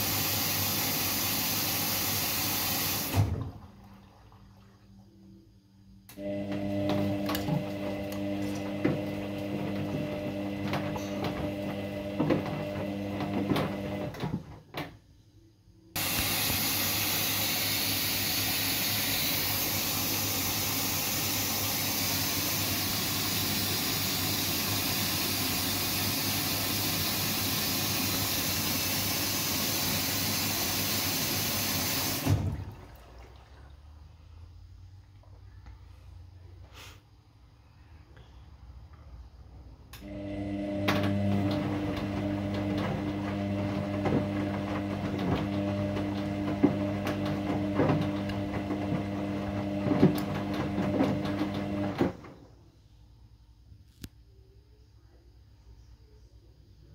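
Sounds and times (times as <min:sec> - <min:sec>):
washing machine motor humming: 0:00.0 - 0:05.3, 0:06.1 - 0:14.6, 0:16.0 - 0:34.1, 0:39.9 - 0:52.5.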